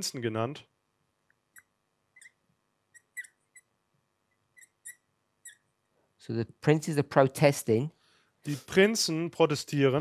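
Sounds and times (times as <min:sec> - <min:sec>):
marker squeaking on a whiteboard: 0:01.5 - 0:03.7, 0:04.3 - 0:05.8.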